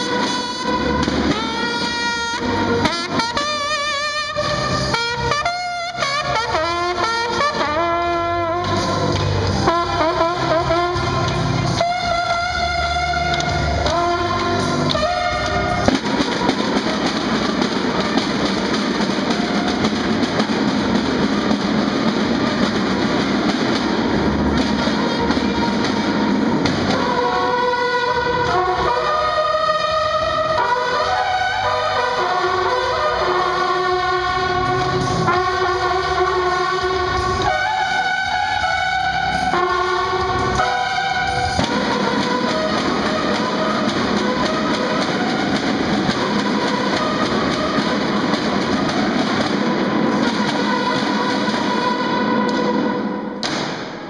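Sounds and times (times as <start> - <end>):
bugles playing melody: 0.0 - 53.8
snare drums beating: 0.0 - 54.0.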